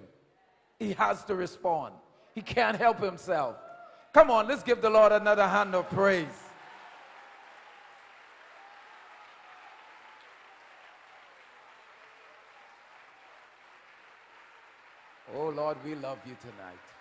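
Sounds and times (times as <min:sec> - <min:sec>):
congregation clapping: 0:05.3 - 0:17.0.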